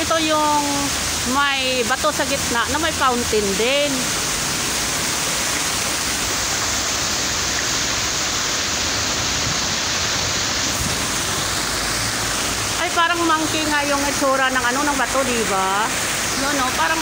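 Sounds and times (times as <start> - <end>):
fountain water splashing: 0.0 - 17.0.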